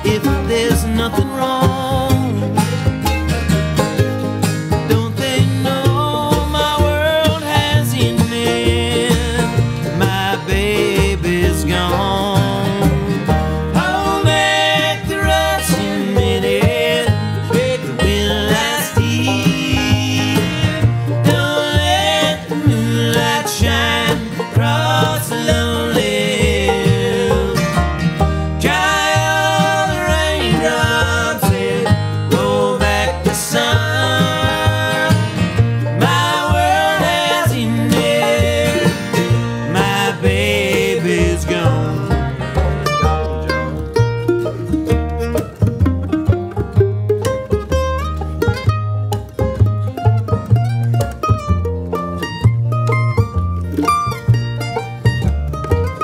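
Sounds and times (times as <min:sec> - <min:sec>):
acoustic guitar: 0:00.0 - 0:56.0
banjo: 0:00.0 - 0:56.0
mandolin: 0:00.0 - 0:56.0
upright bass: 0:00.0 - 0:56.0.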